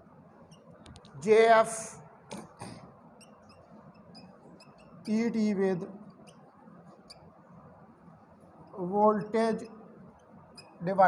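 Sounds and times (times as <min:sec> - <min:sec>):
whiteboard marker squeaking: 0:00.5 - 0:01.1, 0:02.3 - 0:07.4, 0:08.5 - 0:11.0
man speaking: 0:01.2 - 0:02.4, 0:05.1 - 0:06.0, 0:08.8 - 0:09.7.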